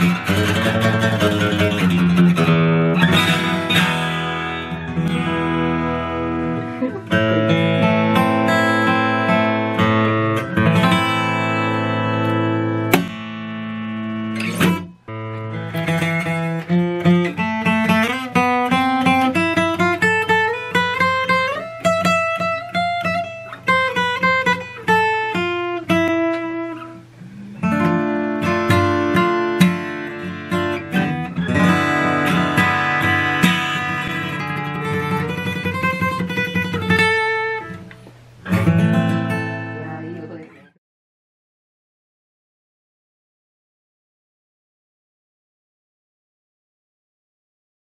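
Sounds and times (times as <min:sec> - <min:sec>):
acoustic guitar playing: 0:00.0 - 0:40.8.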